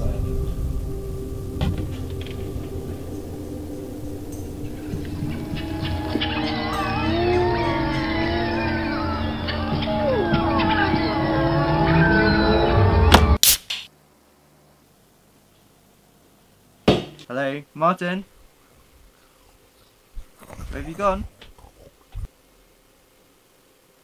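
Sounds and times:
low rumbling drone: 0.0s - 13.4s
screeching wailing pitch glides: 0.0s - 13.4s.

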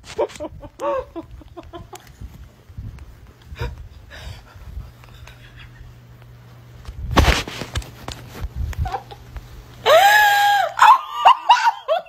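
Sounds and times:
woman laughing hard: 0.2s - 2.2s, 8.8s - 12.0s
woman shrieking: 9.8s - 12.0s.

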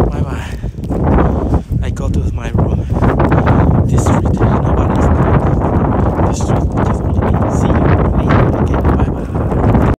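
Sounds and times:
footsteps crunching on snow: 0.0s - 9.9s
wind rumble on microphone: 0.0s - 9.9s.

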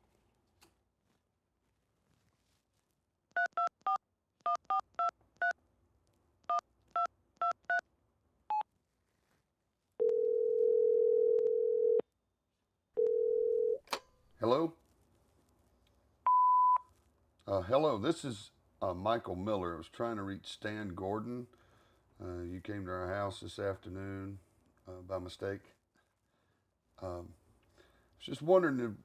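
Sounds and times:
phone ringback tone: 10.0s - 12.0s, 13.0s - 13.8s.

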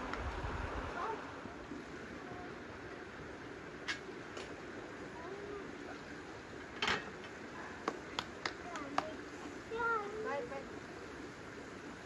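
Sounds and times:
outdoor hiss: 0.0s - 12.0s
hands clapping: 7.8s - 9.2s.

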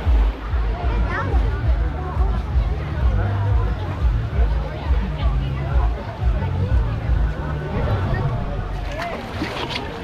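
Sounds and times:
people's voices: 0.0s - 10.0s
water rushing down slide: 6.9s - 10.0s.

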